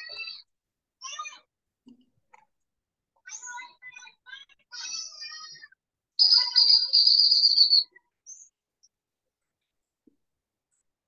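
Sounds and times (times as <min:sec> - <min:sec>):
high bird-like call: 0:06.2 - 0:07.9.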